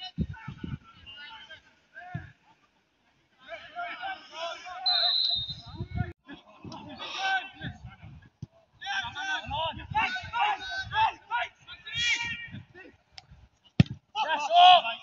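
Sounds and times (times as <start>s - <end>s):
footballers shouting: 8.8s - 13.0s, 14.1s - 15.0s.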